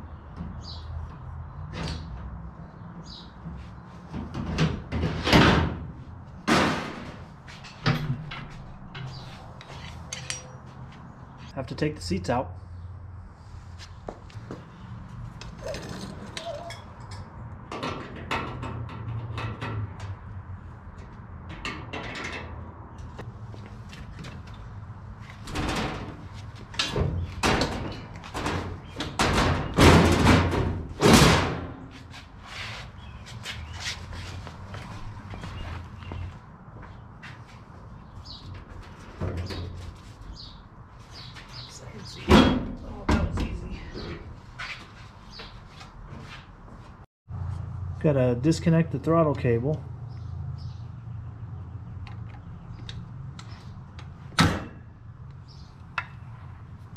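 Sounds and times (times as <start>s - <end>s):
knocks and clanks in steel cab: 25.5s - 31.8s.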